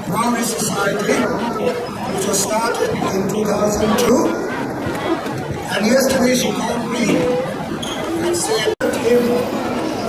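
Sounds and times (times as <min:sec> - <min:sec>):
man speaking to a hall: 0:00.0 - 0:04.6, 0:05.6 - 0:07.5, 0:08.2 - 0:09.8.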